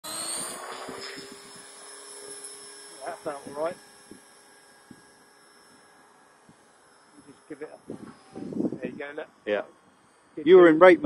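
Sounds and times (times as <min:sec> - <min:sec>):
helicopter motor and rotor whine: 0:00.0 - 0:11.0.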